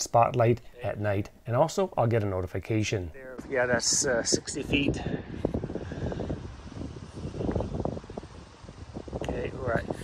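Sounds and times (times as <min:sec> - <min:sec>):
wind noise on microphone: 0:02.7 - 0:10.0.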